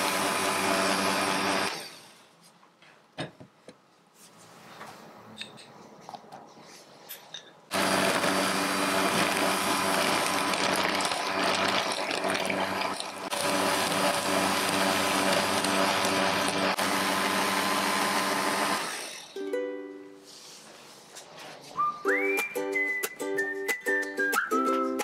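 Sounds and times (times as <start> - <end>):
electric hand mixer running: 0.0 - 2.2, 7.7 - 19.4.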